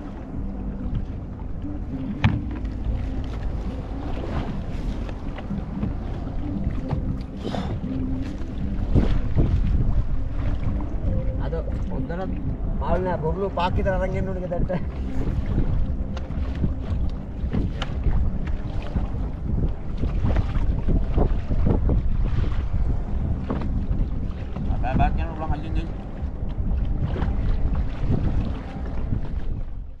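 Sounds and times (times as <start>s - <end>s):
water splashing against hull: 0.0s - 30.0s
wind buffeting microphone: 0.0s - 30.0s
knocks on boat: 2.1s - 3.4s, 4.4s - 8.0s, 16.4s - 19.1s, 23.4s - 25.1s.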